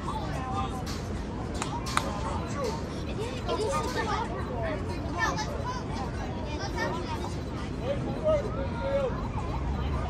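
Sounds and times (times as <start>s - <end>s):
low city rumble: 0.0s - 10.0s
people chattering and calling: 0.0s - 10.0s.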